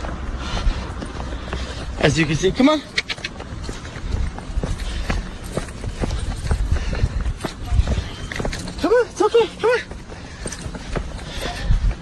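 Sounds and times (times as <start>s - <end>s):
footsteps on pavement: 0.0s - 12.0s.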